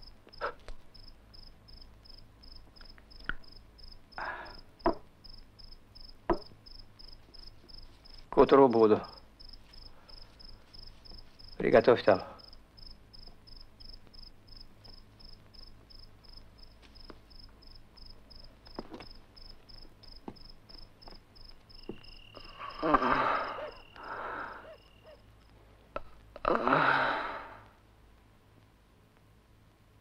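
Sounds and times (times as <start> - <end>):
cricket chirping: 0.0 - 25.6.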